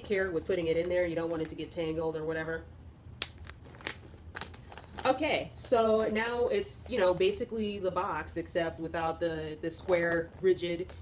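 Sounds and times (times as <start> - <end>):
plastic bag crinkling: 3.2 - 5.9.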